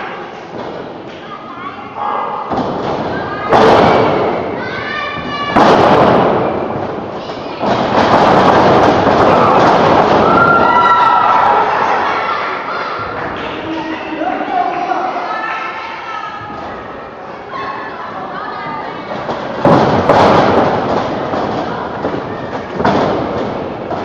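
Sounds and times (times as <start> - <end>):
wrestlers hitting ring mat: 2.5 - 4.6, 5.2 - 11.5, 19.1 - 24.0
crowd shouting: 9.2 - 13.2.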